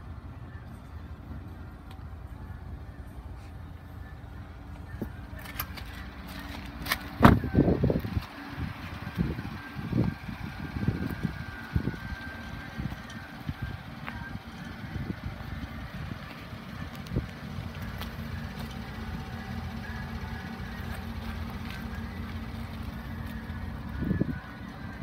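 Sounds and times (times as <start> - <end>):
steady low rumble: 0.0 - 25.0.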